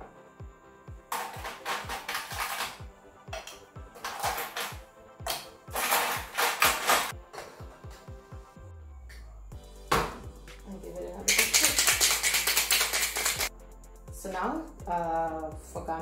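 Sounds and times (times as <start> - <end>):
background music with bass beat: 0.0 - 6.3, 7.1 - 11.3, 13.4 - 16.0
ice rattling in metal shaker: 1.2 - 2.8, 11.2 - 13.5.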